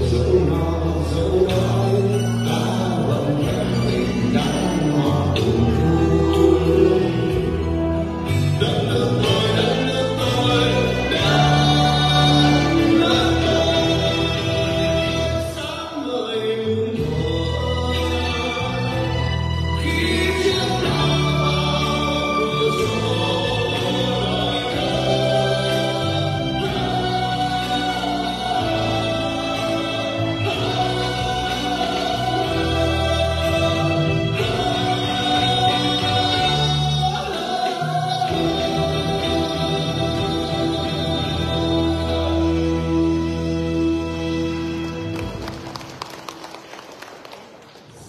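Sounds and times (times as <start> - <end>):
man singing into a microphone: 0.0 - 44.6
backing track music: 0.0 - 46.8.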